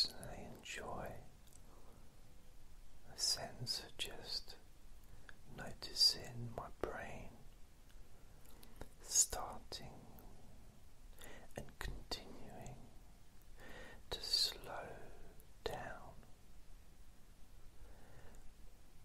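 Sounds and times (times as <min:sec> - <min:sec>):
man whispering: 0:00.0 - 0:02.0, 0:03.0 - 0:07.6, 0:08.7 - 0:10.6, 0:11.2 - 0:16.4.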